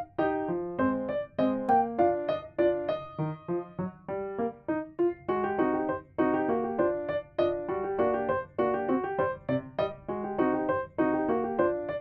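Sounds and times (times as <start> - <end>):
bouncy solo piano tune: 0.0 - 12.0.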